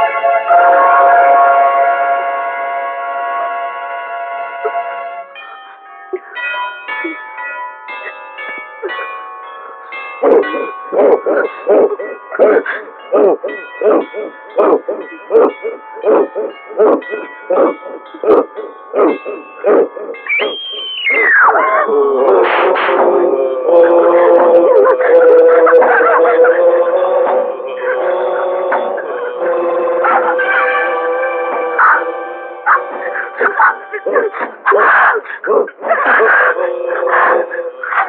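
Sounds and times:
held keyboard chord: 0.0s - 20.5s, 25.8s - 34.6s
sparse notes: 0.0s - 38.0s.

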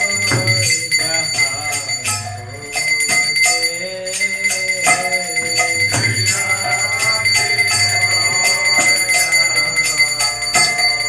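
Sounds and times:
hand bell ringing: 0.0s - 11.0s.

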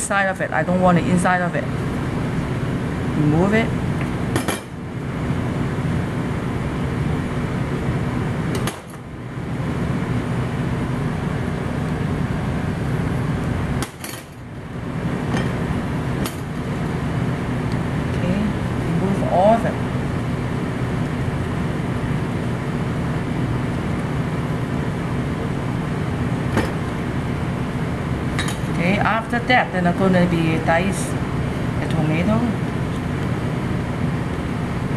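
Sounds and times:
low background hum: 0.0s - 34.9s.

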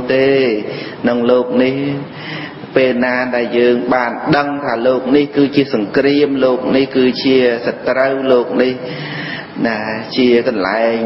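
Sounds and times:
man chanting melodic verse: 0.0s - 11.0s.

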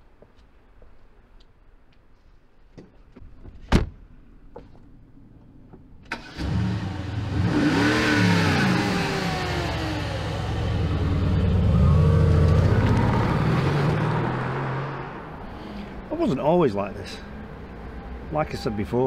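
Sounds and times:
car engine starting and revving: 6.1s - 15.5s.

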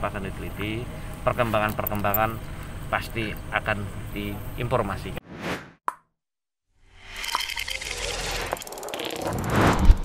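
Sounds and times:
swelling whoosh: 9.3s - 10.0s.

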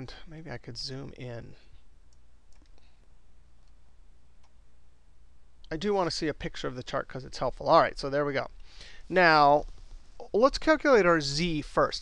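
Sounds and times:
low steady hum: 0.0s - 12.0s
computer mouse clicks: 2.1s - 2.9s, 3.6s - 3.8s.

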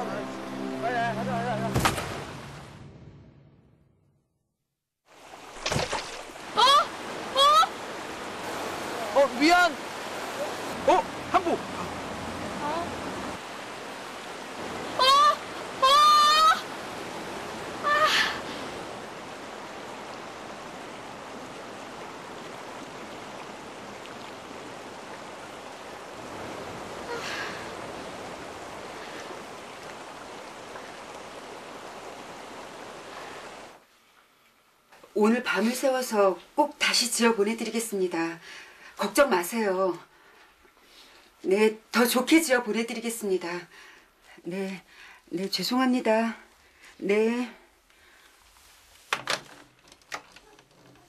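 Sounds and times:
stream water rushing: 0.0s - 2.9s, 5.1s - 34.0s
boy's high cry of alarm: 15.0s - 16.6s.

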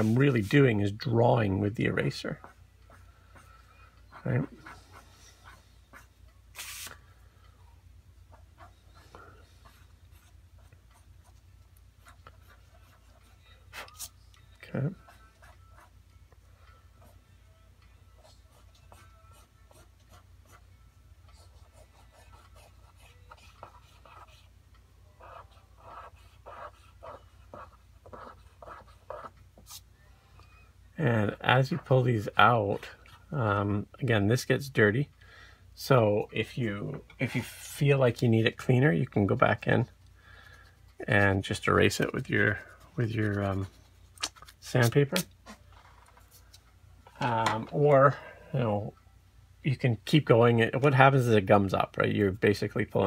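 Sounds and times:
eraser rubbing on paper: 4.4s - 6.9s.

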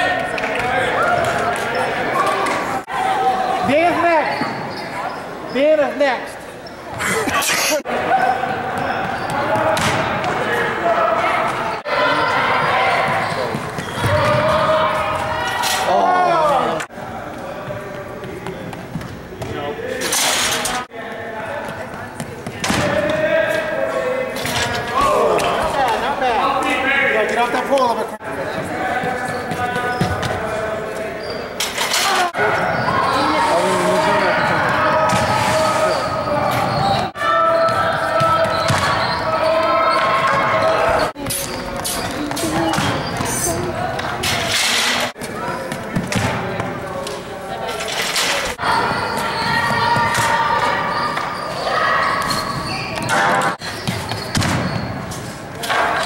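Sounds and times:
people talking: 0.0s - 53.6s
echoing voices: 0.0s - 56.0s.

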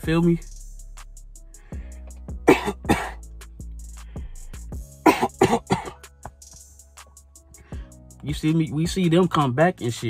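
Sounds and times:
background music with a beat: 0.0s - 10.0s
man coughing: 2.4s - 3.2s, 5.0s - 6.1s.

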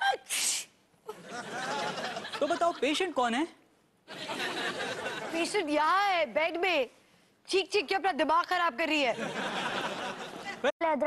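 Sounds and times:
woman sneezing: 0.0s - 0.7s.

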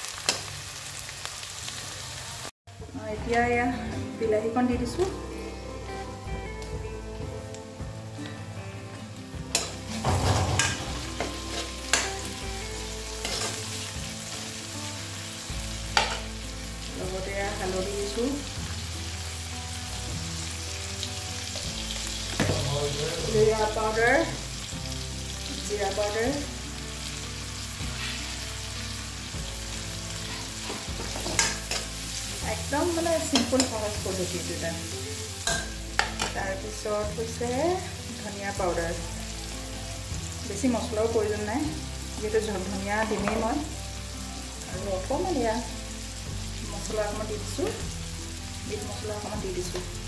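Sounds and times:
vegetables sizzling in oil: 0.0s - 3.4s, 4.2s - 50.0s
spoon knocking and scraping pan: 9.5s - 12.2s, 15.9s - 16.3s, 30.3s - 32.0s, 35.4s - 36.4s.

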